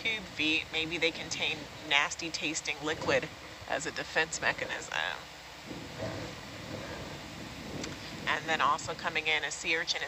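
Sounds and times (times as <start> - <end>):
steady hum and hiss: 0.0 - 10.0.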